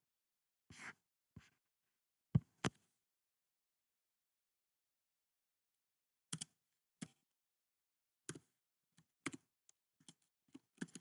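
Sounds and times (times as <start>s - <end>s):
computer keyboard typing: 9.2s - 11.0s.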